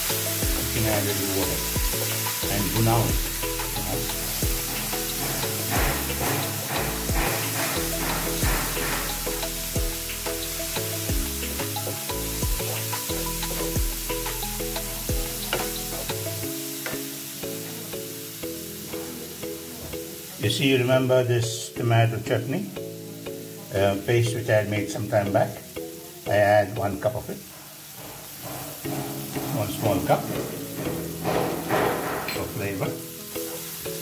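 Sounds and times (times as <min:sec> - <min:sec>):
background music: 0:00.0 - 0:34.0
food sizzling in a frying pan: 0:00.0 - 0:34.0
wooden spatula scraping pan: 0:02.3 - 0:09.7, 0:27.6 - 0:32.8.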